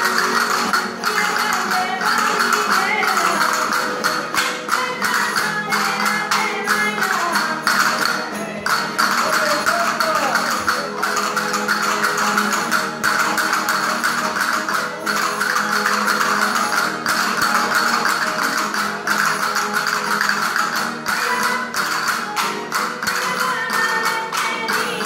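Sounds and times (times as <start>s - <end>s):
plucked string instruments: 0.0s - 25.0s.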